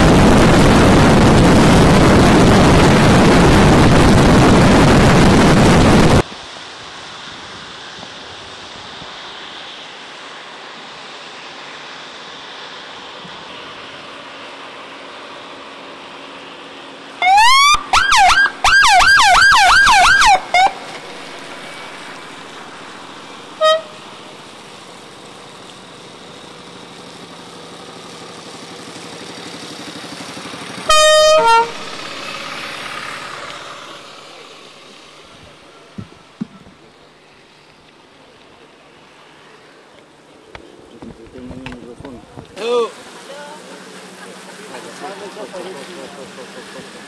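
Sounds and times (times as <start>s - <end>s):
traffic on wet road: 0.0s - 47.0s
police siren yelping: 17.2s - 20.8s
siren horn blast: 17.2s - 21.2s, 23.4s - 24.4s, 30.9s - 32.2s.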